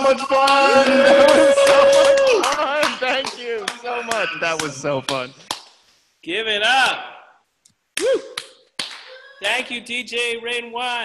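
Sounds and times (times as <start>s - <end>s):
person cheering woo: 0.5s - 2.6s, 8.0s - 8.5s.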